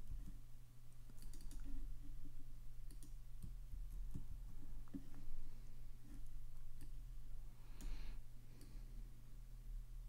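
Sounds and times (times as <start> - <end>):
low electrical hum: 0.0 - 10.0
mouse and keyboard clicks: 1.1 - 2.1.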